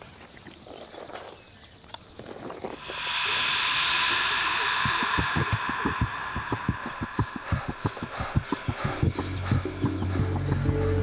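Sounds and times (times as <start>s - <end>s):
high hissing tone: 2.8s - 9.9s
low heartbeat-style thumps: 2.8s - 11.0s.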